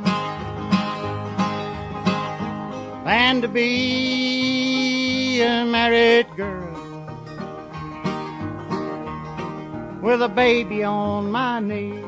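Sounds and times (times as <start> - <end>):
banjo: 0.0 - 12.0
bass: 0.0 - 12.0
picked acoustic guitar: 0.0 - 12.0.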